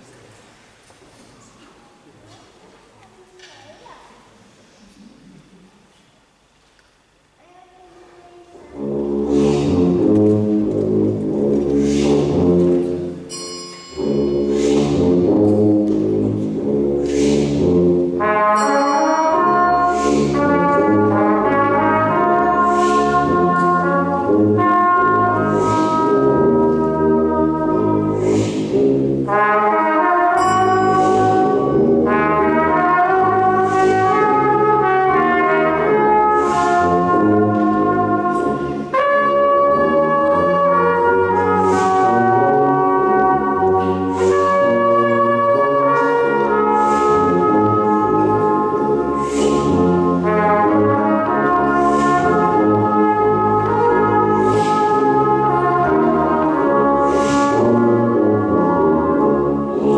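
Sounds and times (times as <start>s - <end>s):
brass band playing: 8.5s - 59.9s.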